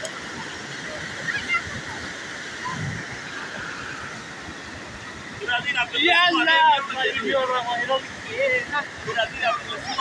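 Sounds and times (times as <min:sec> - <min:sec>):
floodwater rushing: 0:00.0 - 0:10.0.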